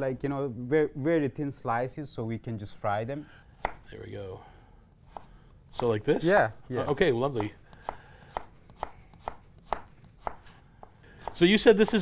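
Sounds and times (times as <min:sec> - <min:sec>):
knife slicing carrots on cutting board: 0:05.1 - 0:06.0, 0:06.8 - 0:12.0.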